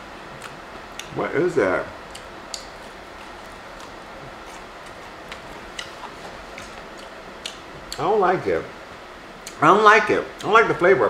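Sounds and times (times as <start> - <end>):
person chewing with crunches: 0.2 - 1.2, 2.0 - 8.0.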